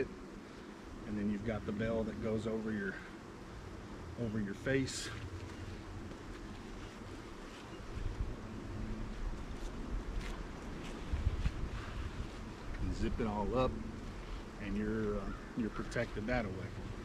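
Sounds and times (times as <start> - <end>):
rustling of canvas jacket: 5.0 - 14.6
wind buffeting microphone: 7.9 - 15.3.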